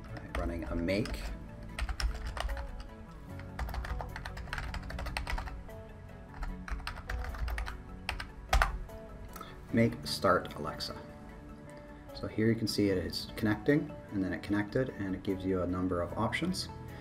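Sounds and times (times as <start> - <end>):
computer keyboard typing: 0.0 - 5.6, 6.3 - 8.8.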